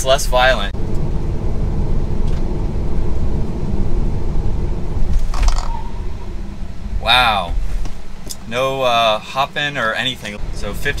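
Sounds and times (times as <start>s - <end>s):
road and tyre rumble in car: 0.0s - 11.0s.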